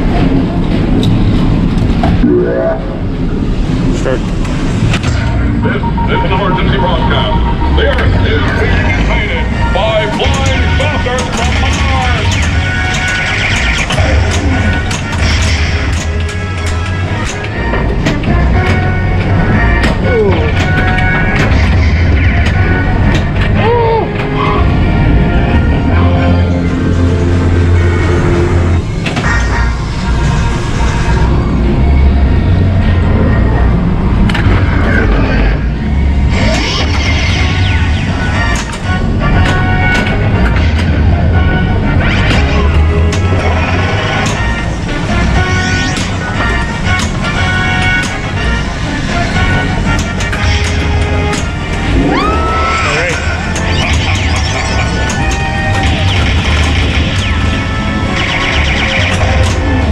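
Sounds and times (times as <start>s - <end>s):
pinball electronic music: 0.0s - 59.9s
sci-fi sound effects: 1.4s - 59.9s
pinball playfield clicks: 10.1s - 24.4s, 38.2s - 41.0s, 42.2s - 43.4s, 44.0s - 48.5s, 49.4s - 51.9s, 53.1s - 59.9s.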